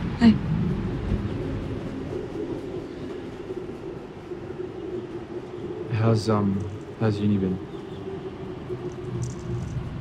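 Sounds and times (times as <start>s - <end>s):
faint held hum: 0.0s - 10.0s.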